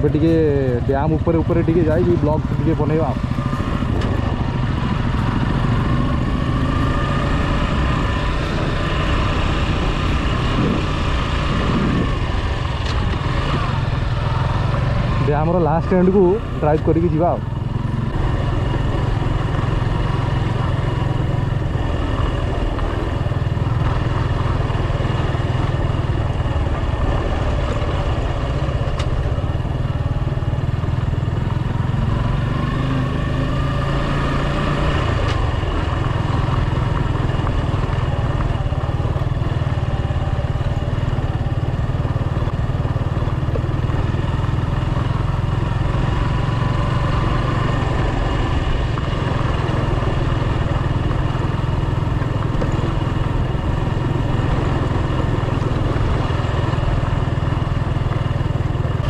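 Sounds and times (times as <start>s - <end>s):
motorcycle engine running at low speed: 0.0s - 59.0s.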